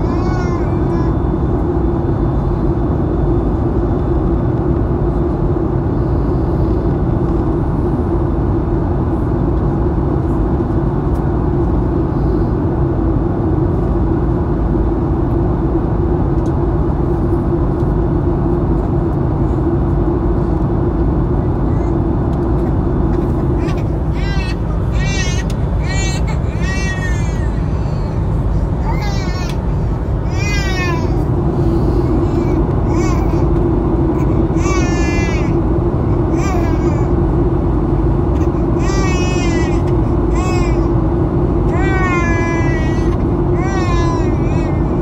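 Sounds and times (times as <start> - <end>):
jet engine and airflow rush: 0.0 - 45.0
steady low hum: 0.0 - 45.0.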